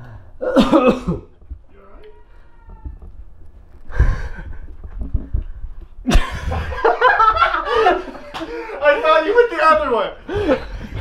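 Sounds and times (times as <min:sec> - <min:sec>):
harsh cough-like burst: 0:00.4 - 0:01.3
low thuds: 0:02.7 - 0:07.6.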